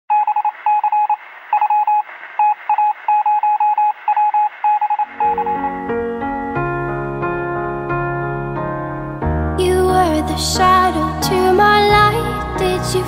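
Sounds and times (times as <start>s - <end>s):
electronic tone beeping: 0.1s - 6.3s
piano music: 5.1s - 13.0s.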